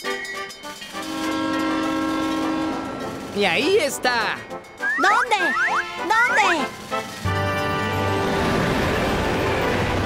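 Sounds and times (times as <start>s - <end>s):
crossing warning bell dings: 0.0s - 10.0s
cartoon train horn: 0.9s - 3.3s.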